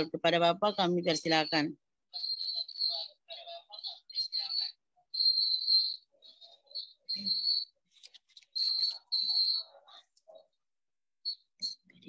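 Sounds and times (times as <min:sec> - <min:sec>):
high-pitched whistled chirps: 0:00.0 - 0:10.4, 0:11.3 - 0:12.0.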